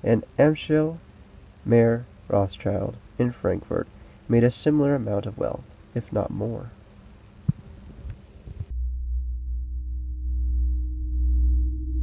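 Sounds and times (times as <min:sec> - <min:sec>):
faint steady tones: 0:00.0 - 0:08.8
low electronic drone: 0:00.0 - 0:12.0.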